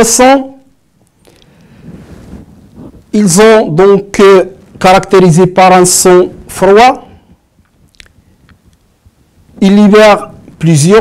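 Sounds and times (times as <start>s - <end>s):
man's mouth clicks and lip noises: 1.2s - 1.6s, 7.6s - 8.9s.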